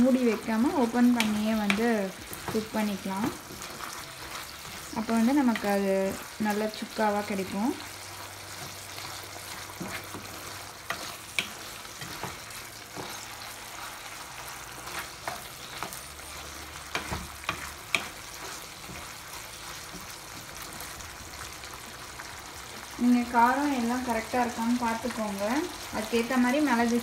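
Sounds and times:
frying hiss: 0:00.0 - 0:27.0
spatula scraping and clicking on pan: 0:01.0 - 0:02.8, 0:08.5 - 0:20.8.

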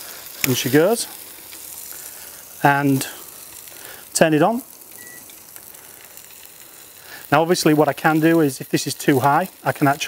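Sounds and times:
grill sizzling hiss: 0:00.0 - 0:10.0
high control panel beep: 0:05.0 - 0:05.3.

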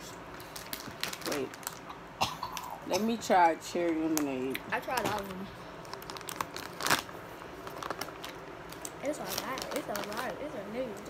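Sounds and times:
plastic candy bag crinkling: 0:00.3 - 0:01.9, 0:03.0 - 0:11.0.

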